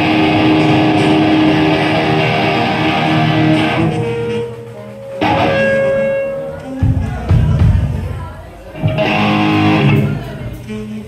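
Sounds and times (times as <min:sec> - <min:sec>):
trumpet: 0:00.0 - 0:07.2
saxophone: 0:00.0 - 0:07.3, 0:09.0 - 0:11.0
electric guitar: 0:00.0 - 0:07.8, 0:08.7 - 0:10.8
drums: 0:00.0 - 0:11.0
trombone: 0:03.0 - 0:06.8.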